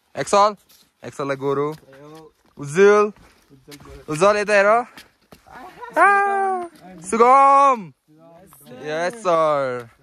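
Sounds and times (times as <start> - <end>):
person shouting: 5.5 - 6.8.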